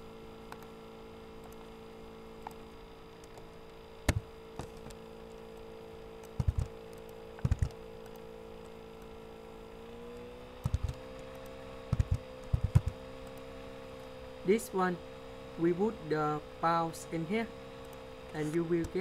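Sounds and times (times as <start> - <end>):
electrical hum: 0.0 - 19.0
mouse and keyboard clicking: 6.2 - 8.3, 10.6 - 13.5.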